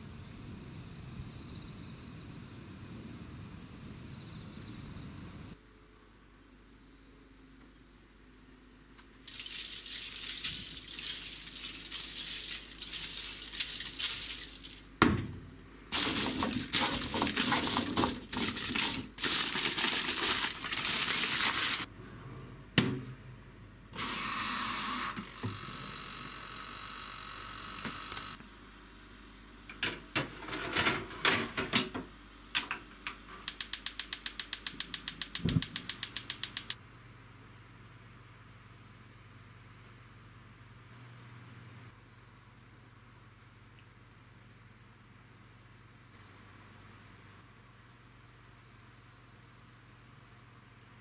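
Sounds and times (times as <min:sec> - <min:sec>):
aluminium foil crinkling: 0:09.2 - 0:14.9, 0:16.0 - 0:21.9
timer dial ratchet clicks: 0:33.5 - 0:36.8.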